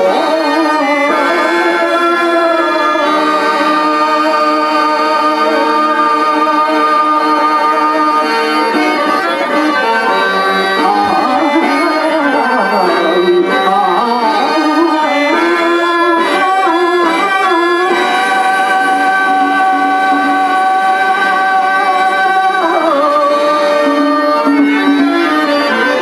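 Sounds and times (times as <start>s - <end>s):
harmonium melody: 0.0s - 26.0s
tabla drumming: 0.0s - 26.0s.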